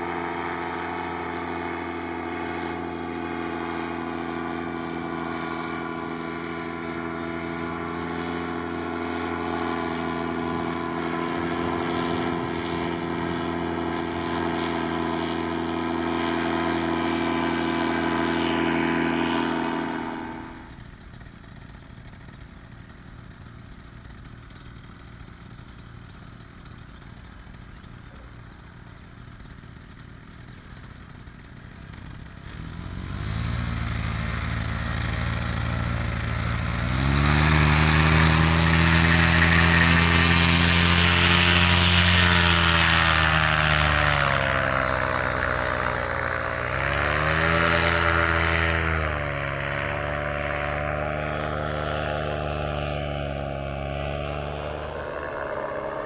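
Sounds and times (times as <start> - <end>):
paramotor engine and propeller: 0.0 - 56.0.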